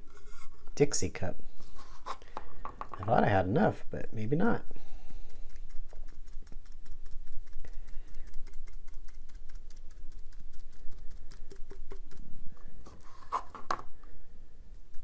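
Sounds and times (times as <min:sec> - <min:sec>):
foam brush dabbing on metal tumbler: 0:04.5 - 0:13.4.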